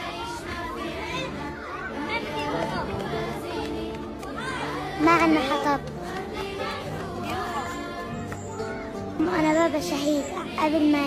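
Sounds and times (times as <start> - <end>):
background music: 0.0 - 11.0
indistinct voices chattering: 0.0 - 11.0.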